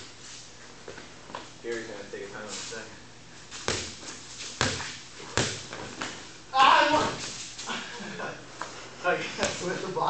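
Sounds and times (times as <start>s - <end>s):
basketball bouncing on concrete: 3.7s - 4.0s, 4.6s - 5.6s.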